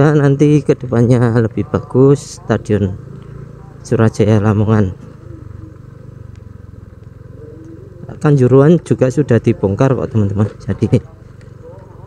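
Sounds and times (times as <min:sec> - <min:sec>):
scooter engine running: 0:00.0 - 0:12.0.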